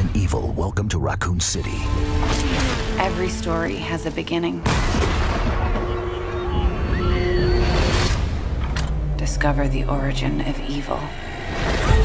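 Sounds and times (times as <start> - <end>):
deep low rumble: 4.9 - 12.0.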